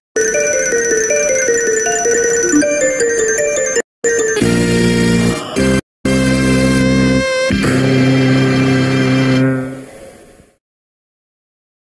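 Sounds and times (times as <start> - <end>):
electronic music held chords: 0.2 - 4.6.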